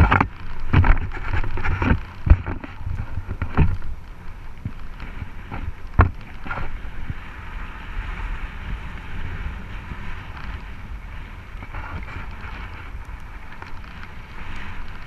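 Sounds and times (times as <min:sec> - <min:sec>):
bike tyres on gravel: 0:00.0 - 0:15.0
wind on microphone: 0:00.0 - 0:15.0.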